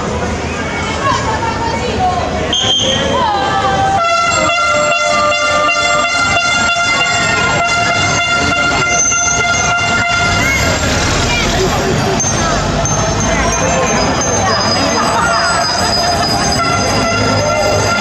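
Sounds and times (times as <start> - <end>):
crowd chatter: 0.0 - 18.0
horn blast: 4.0 - 11.5, 16.6 - 18.0.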